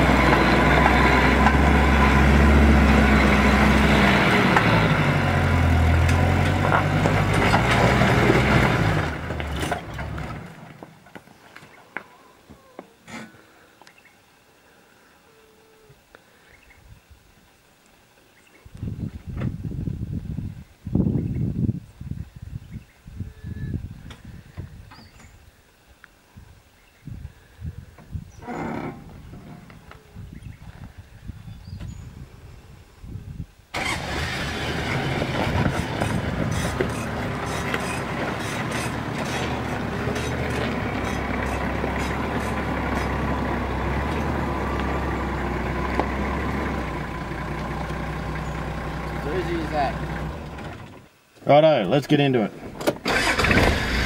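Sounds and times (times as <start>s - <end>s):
engine starting and running: 0.0s - 10.9s, 33.7s - 51.1s, 52.6s - 54.0s
low bumps: 0.0s - 11.6s, 27.1s - 33.3s, 34.8s - 51.1s.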